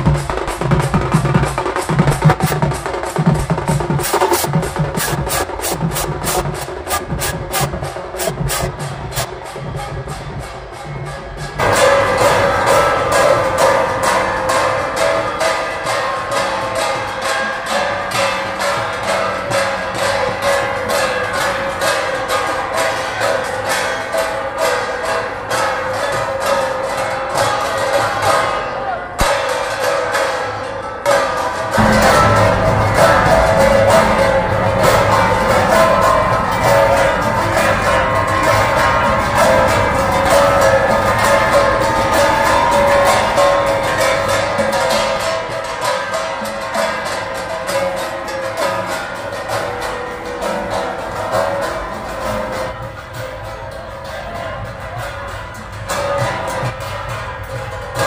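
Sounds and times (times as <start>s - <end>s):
music with steady beat: 0.0s - 15.6s, 31.7s - 58.0s
barrel drums beaten with sticks: 0.0s - 22.9s, 31.6s - 58.0s.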